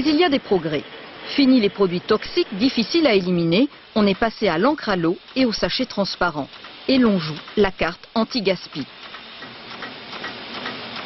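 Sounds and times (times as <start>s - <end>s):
light repeated ticking: 1.6s - 11.0s
machine running: 4.0s - 11.0s.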